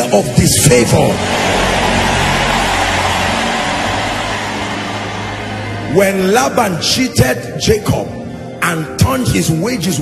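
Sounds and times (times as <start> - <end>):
crowd shouting and cheering: 0.0 - 6.9.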